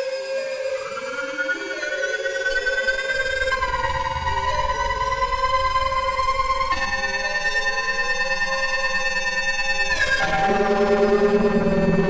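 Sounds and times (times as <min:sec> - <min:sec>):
synthesizer drone: 0:09.9 - 0:12.0.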